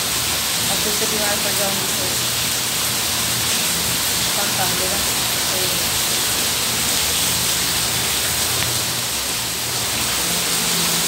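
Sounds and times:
heavy rain falling: 0.0 - 11.0.

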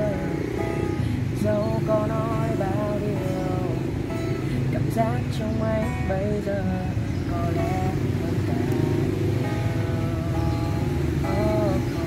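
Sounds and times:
acoustic guitar melody: 0.0 - 12.0
road traffic rumble: 0.0 - 12.0.

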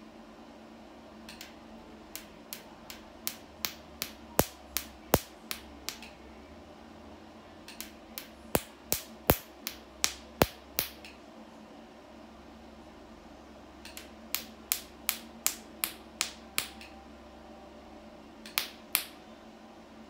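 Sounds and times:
low steady hum: 0.0 - 20.0
laser handpiece snapping: 1.3 - 6.2, 7.7 - 11.2, 13.8 - 17.0, 18.4 - 19.2.

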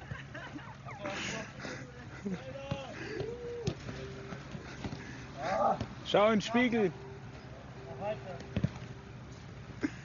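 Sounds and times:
players calling: 0.0 - 9.8.

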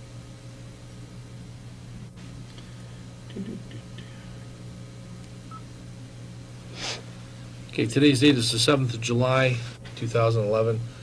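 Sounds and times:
electrical hum: 0.0 - 11.0
quick intake of breath: 6.7 - 7.1.

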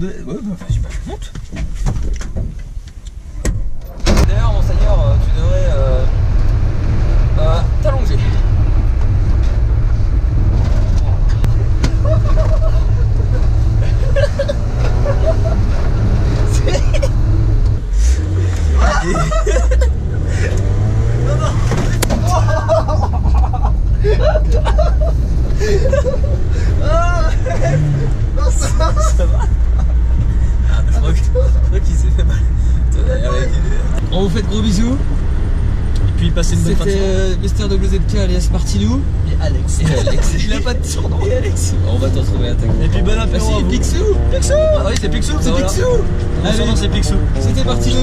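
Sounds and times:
people talking: 0.0 - 1.4, 4.1 - 6.1, 7.4 - 8.4, 16.4 - 17.1, 18.7 - 19.9, 26.8 - 29.5, 30.7 - 35.0, 36.0 - 48.0
van engine and road noise: 0.0 - 48.0
people laughing: 11.6 - 17.3, 18.6 - 31.8, 39.8 - 41.8.

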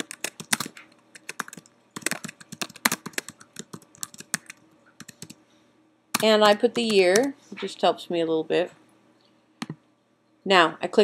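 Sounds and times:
computer keyboard typing: 0.0 - 5.4, 6.1 - 7.4.

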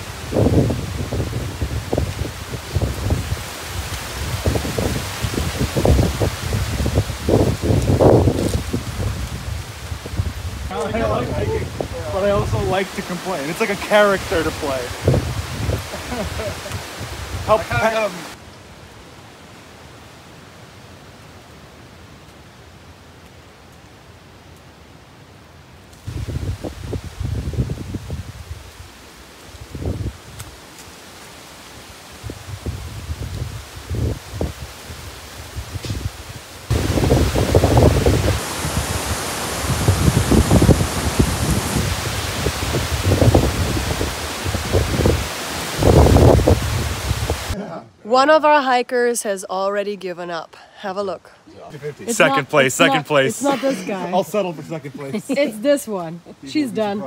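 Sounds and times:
wind gusting on microphone: 0.0 - 18.4, 26.0 - 30.6, 31.7 - 47.6
leaves rustling: 0.0 - 49.5, 51.3 - 57.0
faint steady hiss: 0.0 - 57.0.

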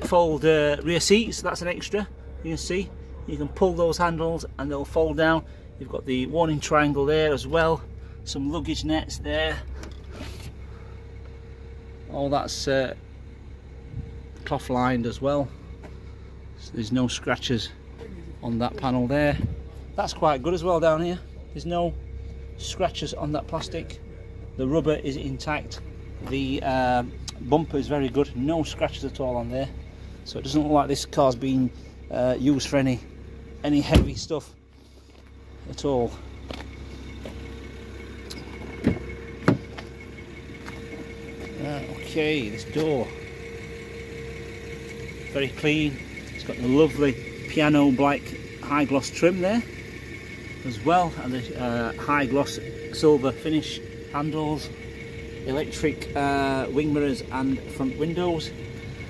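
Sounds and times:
car low hum: 0.0 - 59.0.

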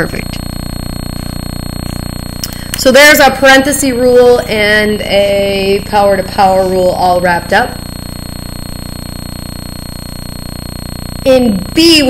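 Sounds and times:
faint high whine: 0.0 - 12.0
fluttering electrical buzz: 0.0 - 12.0.

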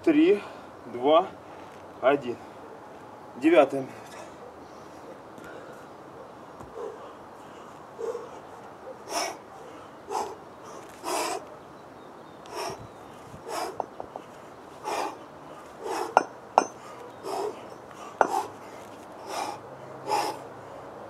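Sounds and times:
man breathing hard: 6.8 - 11.5, 12.5 - 21.0.

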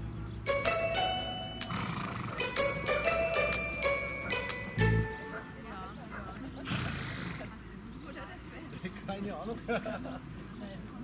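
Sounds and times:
horse blowing: 1.6 - 2.9, 6.6 - 7.6
faint distant voices: 2.3 - 11.0.

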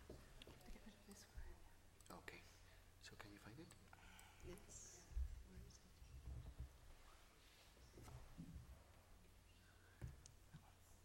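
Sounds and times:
faint whispered talk: 0.1 - 8.2.

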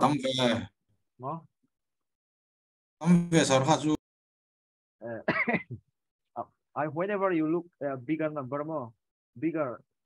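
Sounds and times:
person speaking: 0.0 - 1.5
person clearing throat: 5.2 - 5.8.

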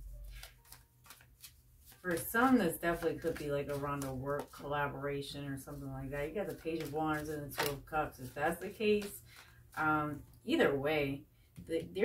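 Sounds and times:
cards being shuffled: 0.1 - 10.0.

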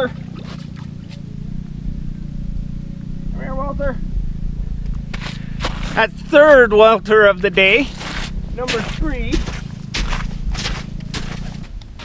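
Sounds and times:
wind rumble on microphone: 0.0 - 12.0
boots crunching on snowy ice: 5.0 - 6.5, 7.4 - 12.0.

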